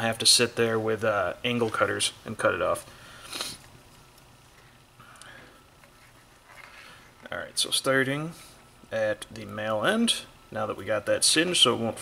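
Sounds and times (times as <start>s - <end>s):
soft rustling of cable sleeving: 3.5s - 7.7s.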